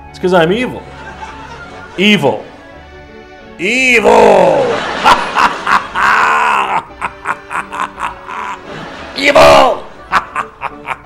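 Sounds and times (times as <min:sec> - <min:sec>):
man laughing villainously: 0:04.0 - 0:11.0.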